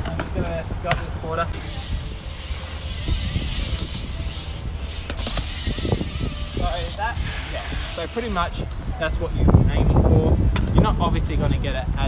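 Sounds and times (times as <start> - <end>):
bike tyres rolling on concrete: 0.0 - 12.0.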